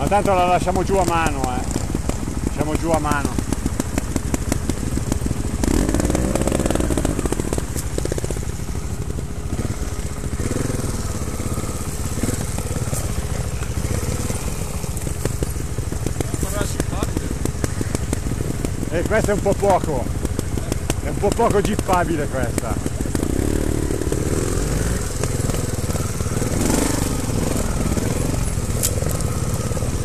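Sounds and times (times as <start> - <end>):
motorcycle engine popping: 0.0 - 30.0.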